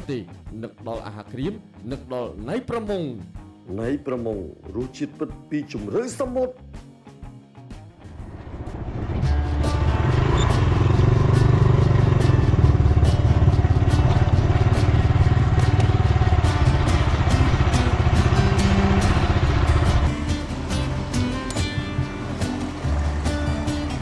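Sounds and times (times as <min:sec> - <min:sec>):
motorcycle engine running: 0:08.1 - 0:24.0.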